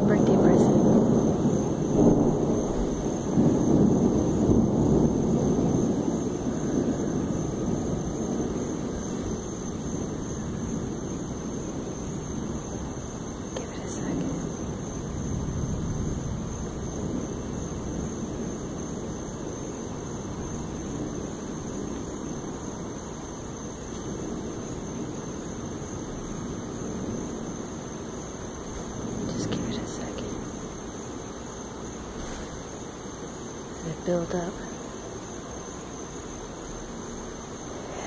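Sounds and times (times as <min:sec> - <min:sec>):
thunder rumble: 0:00.0 - 0:38.0
wind: 0:00.0 - 0:38.0.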